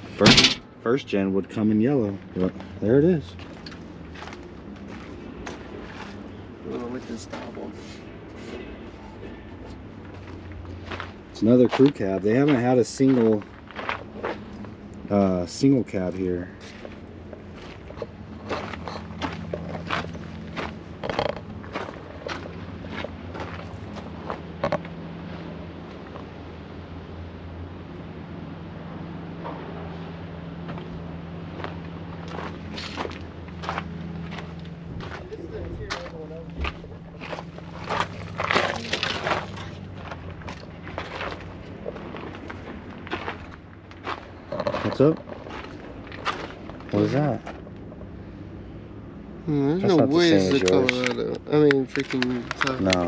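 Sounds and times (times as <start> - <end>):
steady low hum: 0.0 - 53.0
footsteps on dirt and gravel: 3.4 - 15.0, 15.9 - 25.2, 30.6 - 48.0
muffled voices: 35.0 - 39.8.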